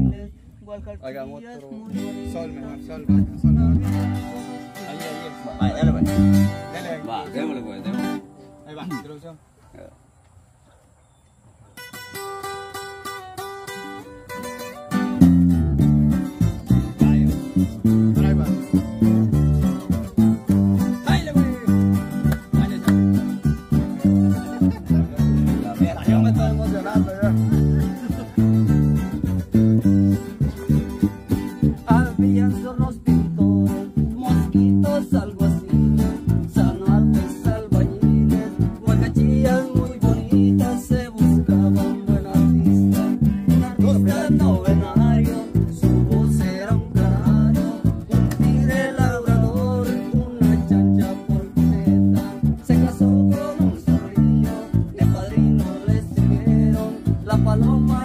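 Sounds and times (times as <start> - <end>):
electric bass guitar: 0.0 - 8.7, 11.8 - 58.0
guitar picking a melody: 0.0 - 9.3, 11.8 - 58.0
strummed acoustic guitars: 1.1 - 9.2, 11.8 - 58.0.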